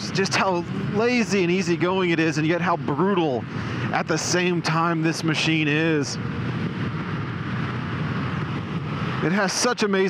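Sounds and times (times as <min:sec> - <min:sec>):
wind and road noise: 0:00.0 - 0:10.0.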